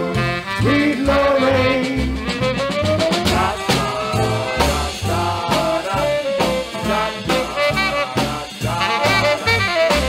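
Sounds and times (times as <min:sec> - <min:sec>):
doo-wop vocal group with band: 0:00.0 - 0:10.0.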